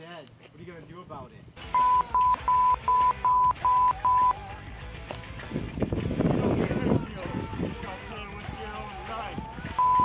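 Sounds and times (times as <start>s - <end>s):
censor bleeps: 1.7s - 4.4s, 9.8s - 10.0s.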